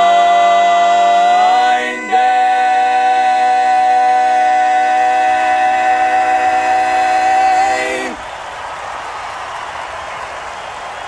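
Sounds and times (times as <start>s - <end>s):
male vocal quartet holding a chord: 0.0s - 8.2s.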